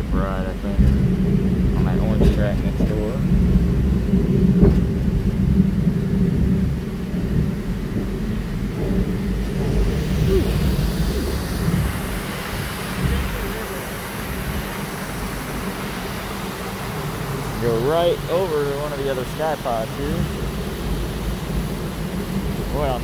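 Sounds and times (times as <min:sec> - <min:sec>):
ride car rumbling on track: 0:00.0 - 0:23.0.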